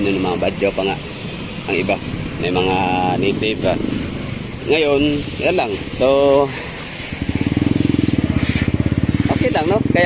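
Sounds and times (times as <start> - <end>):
small engine puttering: 5.6 - 10.0.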